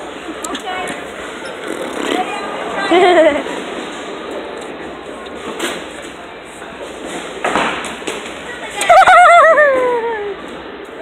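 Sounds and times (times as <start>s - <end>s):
person's wavering cry: 8.9s - 10.4s.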